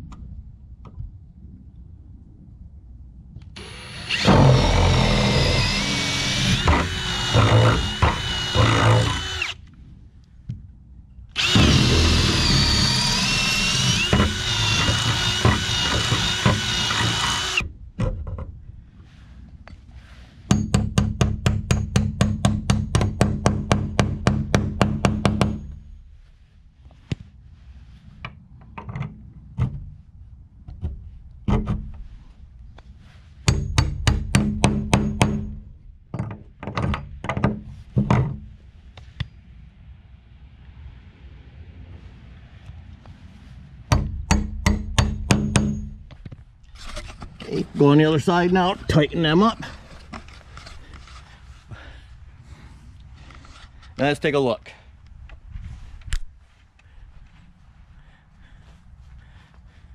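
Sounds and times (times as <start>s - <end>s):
cordless drill whining under load: 3.6s - 9.7s, 11.4s - 17.7s.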